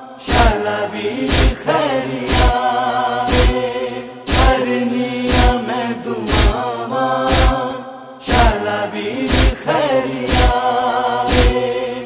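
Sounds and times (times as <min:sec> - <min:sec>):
voices chanting in chorus: 0:00.0 - 0:12.0
deep drum thump: 0:04.3 - 0:04.5, 0:06.3 - 0:06.5, 0:07.3 - 0:07.5.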